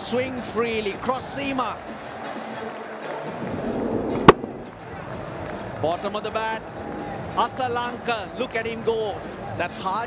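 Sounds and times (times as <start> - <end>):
stadium crowd noise: 0.0 - 10.0
cricket bat striking ball: 4.2 - 4.7.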